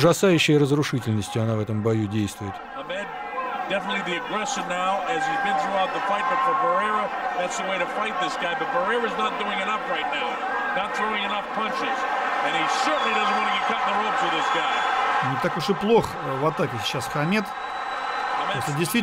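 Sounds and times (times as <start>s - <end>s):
man commentating: 3.6s - 17.5s.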